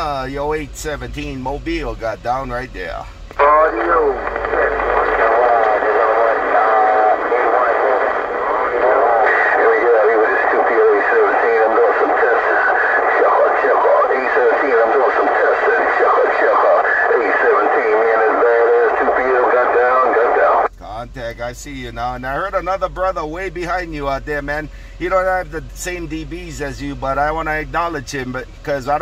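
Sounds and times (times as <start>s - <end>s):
distorted man's voice over radio: 0.0s - 29.0s.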